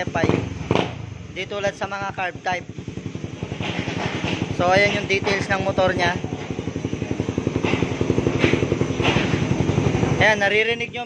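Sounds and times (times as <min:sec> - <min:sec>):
motorcycle engine idling: 0:00.0 - 0:11.0.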